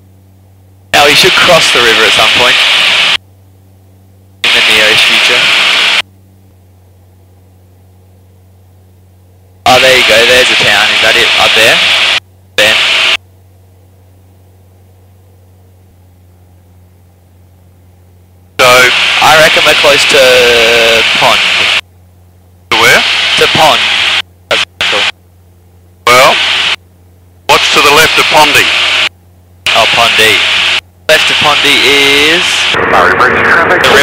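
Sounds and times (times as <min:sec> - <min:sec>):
low steady hum: 0:00.0 - 0:34.0
radio static hiss bursts: 0:01.0 - 0:03.2, 0:04.4 - 0:06.0, 0:09.7 - 0:13.2, 0:18.6 - 0:21.8, 0:22.7 - 0:25.1, 0:26.1 - 0:26.8, 0:27.5 - 0:29.1, 0:29.7 - 0:34.0
voice over radio: 0:01.0 - 0:03.2, 0:04.4 - 0:06.0, 0:09.7 - 0:13.2, 0:18.6 - 0:21.8, 0:22.7 - 0:25.1, 0:26.1 - 0:26.8, 0:27.5 - 0:29.1, 0:29.7 - 0:34.0.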